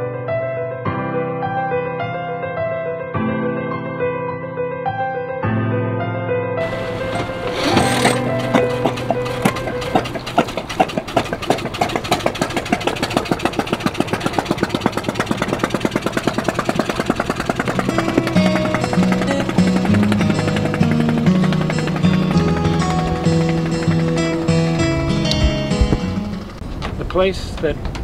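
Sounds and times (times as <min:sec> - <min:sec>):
background music: 0:00.0 - 0:10.8, 0:17.2 - 0:26.6
boat engine putt-putt: 0:06.6 - 0:28.0.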